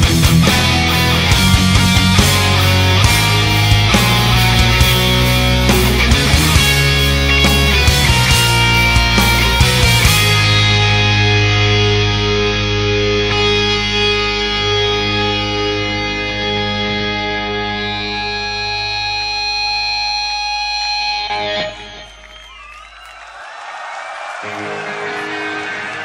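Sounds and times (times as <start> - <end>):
distorted electric guitars chord: 0.0 - 22.0.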